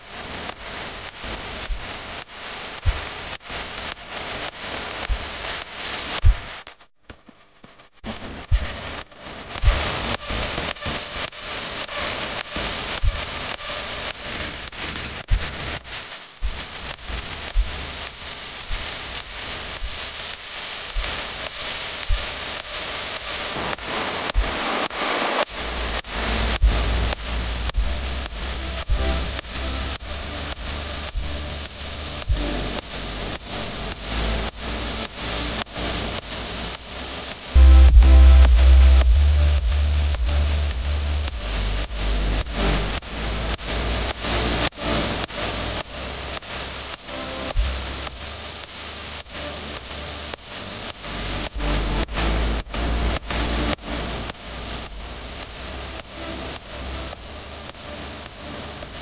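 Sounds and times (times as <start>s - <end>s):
jet engine hissing and crackling: 16.4s - 43.6s
deep rumble: 25.5s - 34.3s, 37.6s - 43.7s.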